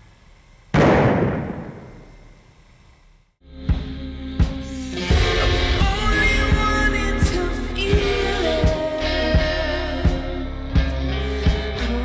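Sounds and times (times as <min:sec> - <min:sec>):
loud bang with rumbling tail: 0:00.8 - 0:02.3.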